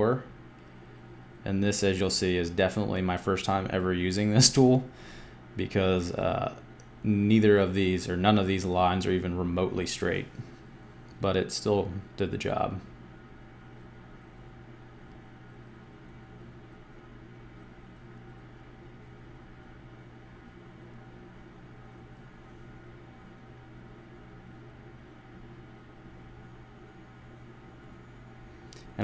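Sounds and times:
faint steady low hum: 0.0s - 29.0s.

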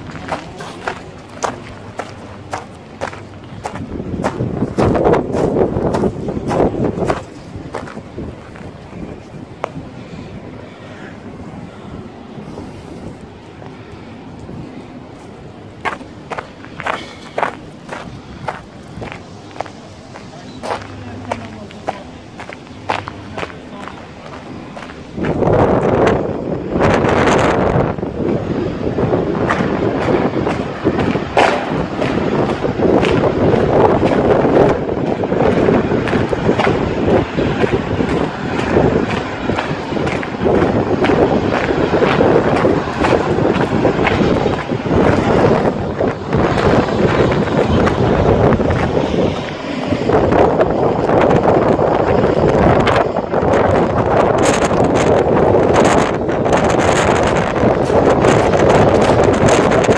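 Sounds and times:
footsteps on paving: 0.0s - 9.8s, 15.2s - 26.2s, 28.9s - 50.0s
wind rushing on microphone: 0.0s - 59.9s.

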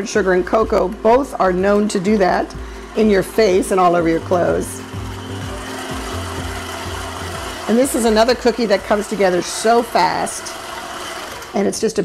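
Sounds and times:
stand mixer motor running: 0.0s - 12.0s.

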